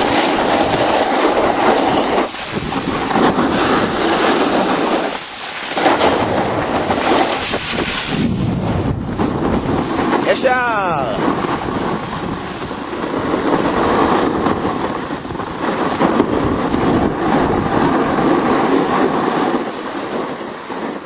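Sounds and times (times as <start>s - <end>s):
skis scraping over snow: 0.0s - 10.5s, 11.2s - 21.0s.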